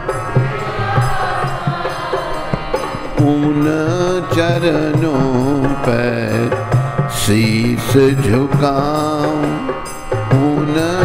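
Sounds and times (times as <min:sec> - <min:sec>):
low drone: 0:00.0 - 0:11.0
man singing devotional song: 0:00.0 - 0:11.0.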